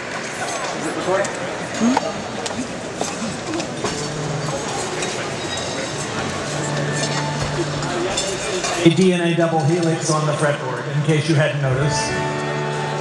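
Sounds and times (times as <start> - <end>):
murmur of many voices: 0.0 - 13.0
glassware and tableware clinking: 1.8 - 8.9.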